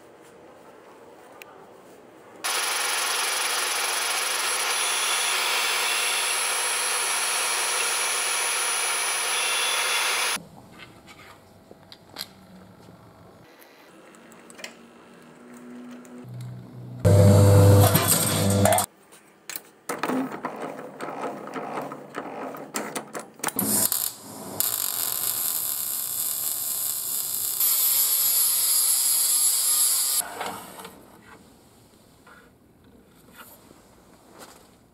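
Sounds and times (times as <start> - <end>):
angle grinder grinding steel: 2.5 - 10.4, 17.1 - 18.9
machine hum: 16.3 - 18.9
slip roll rolling sheet steel: 17.1 - 18.9.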